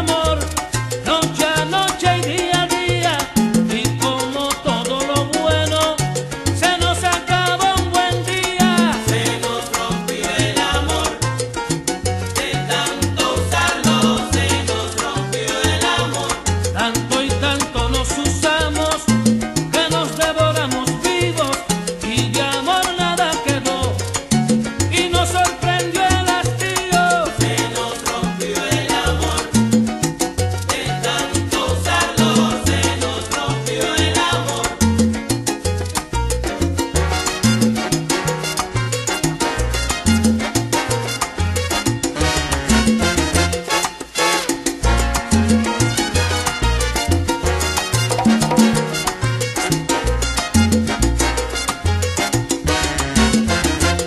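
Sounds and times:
salsa band instrumental: 0.0 - 54.0.

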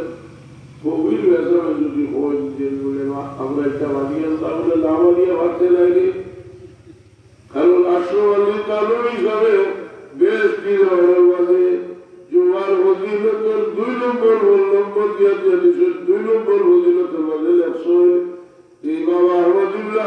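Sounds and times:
man chanting melodically: 0.0 - 6.8, 7.5 - 20.0.

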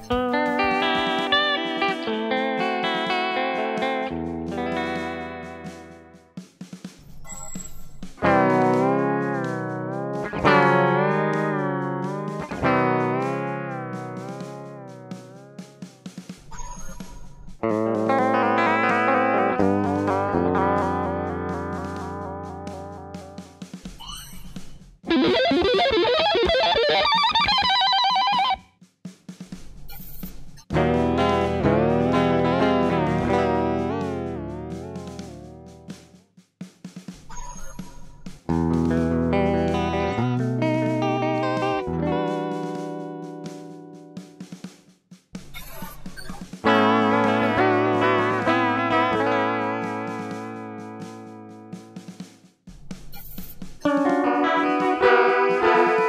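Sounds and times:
electric guitar with vibrato: 0.0 - 6.2, 8.2 - 15.9, 17.6 - 23.5, 25.0 - 28.6, 30.7 - 36.0, 38.5 - 44.5, 46.6 - 52.0, 53.8 - 56.0.

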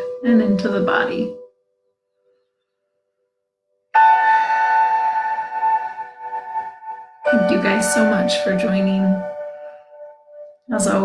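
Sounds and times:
meditation bell ringing: 4.0 - 11.0.

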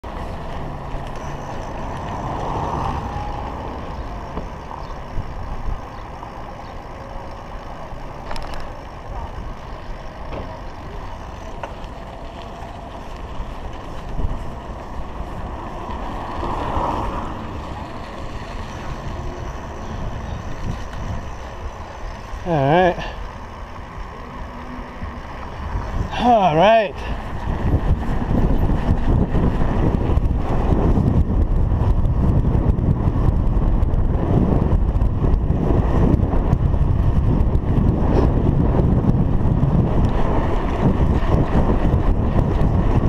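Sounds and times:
traffic passing: 0.0 - 43.0
wind and road noise: 0.0 - 43.0
sharp bike clicks: 0.1 - 43.0
wind buffeting microphone: 8.0 - 43.0.

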